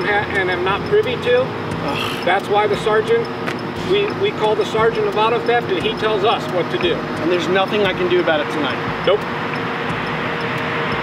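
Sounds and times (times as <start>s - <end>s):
man speaking: 0.0s - 9.2s
roadside traffic: 0.0s - 11.0s.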